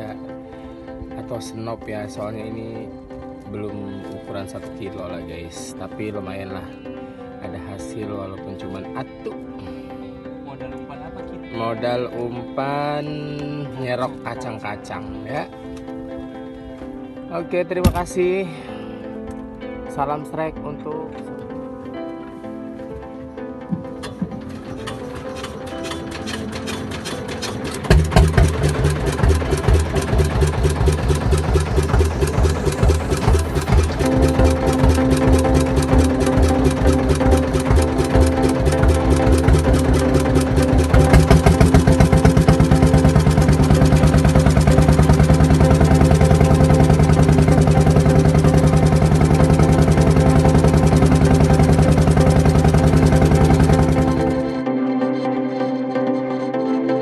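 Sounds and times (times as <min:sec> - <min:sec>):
boat engine running: 0:23.3 - 0:54.7.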